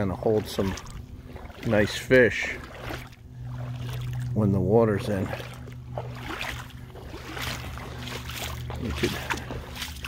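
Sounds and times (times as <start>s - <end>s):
steady low hum: 0.0s - 10.0s
water splashing while wading: 0.0s - 10.0s.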